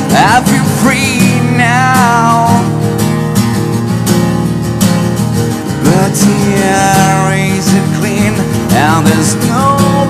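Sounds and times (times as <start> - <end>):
man singing: 0.0 - 2.9, 5.8 - 10.0
acoustic guitar strumming chords: 0.0 - 10.0.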